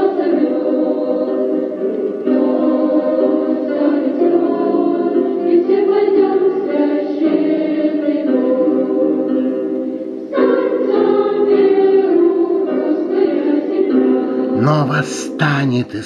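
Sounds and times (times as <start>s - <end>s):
choir singing held notes: 0.0s - 16.0s.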